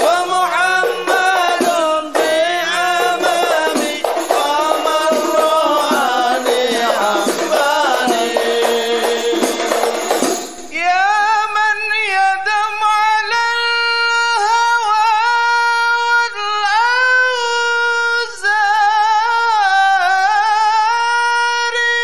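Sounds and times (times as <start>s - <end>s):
high solo voice singing: 0.0s - 22.0s.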